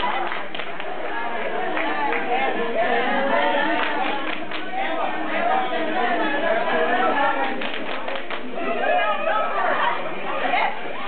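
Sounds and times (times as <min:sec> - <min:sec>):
group babble of voices: 0:00.0 - 0:11.0.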